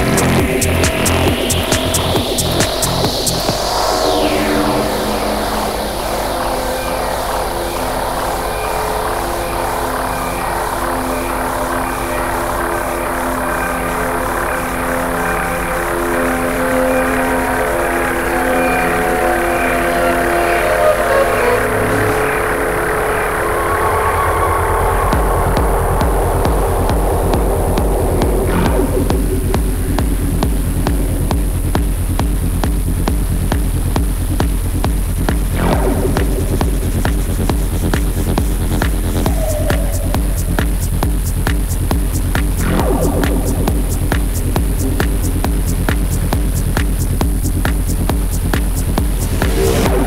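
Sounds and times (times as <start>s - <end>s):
hi-hat ticking: 0.0s - 3.9s, 25.1s - 50.0s
deep bass and beat: 0.0s - 8.2s, 24.3s - 50.0s
falling synth sweep: 0.0s - 47.2s, 49.0s - 50.0s
held synth notes: 0.0s - 50.0s.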